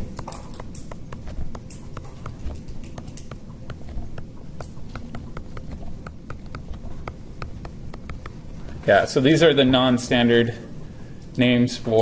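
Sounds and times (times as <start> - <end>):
stylus tapping on tablet screen: 0.0 - 8.7.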